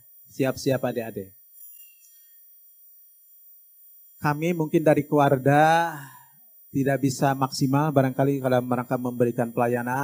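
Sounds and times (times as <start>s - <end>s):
faint electronic tone: 0.0s - 10.0s.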